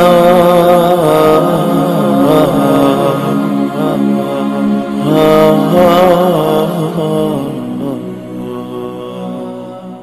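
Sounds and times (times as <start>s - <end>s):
melodic vocal chanting: 0.0s - 10.0s.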